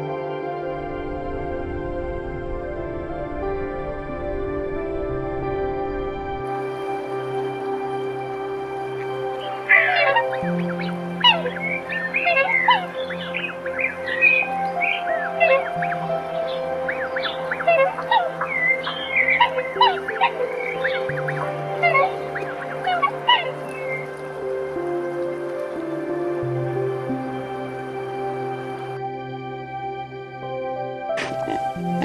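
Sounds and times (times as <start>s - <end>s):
soft sustained background music: 0.0s - 32.0s
swans calling: 6.5s - 29.0s, 31.1s - 32.0s.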